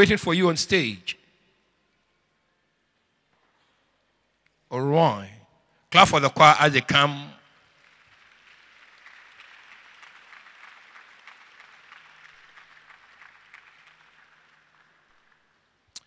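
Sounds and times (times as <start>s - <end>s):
faint applause: 7.7s - 15.7s.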